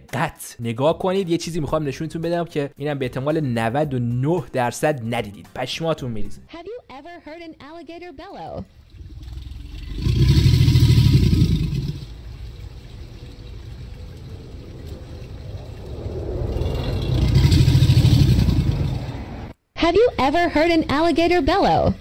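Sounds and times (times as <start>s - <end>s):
alligator bellowing: 8.8s - 19.5s.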